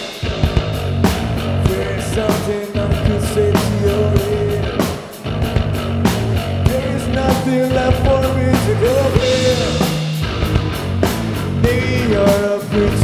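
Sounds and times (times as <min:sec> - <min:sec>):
distorted guitars: 0:00.0 - 0:13.0
drums and cymbals: 0:00.0 - 0:13.0.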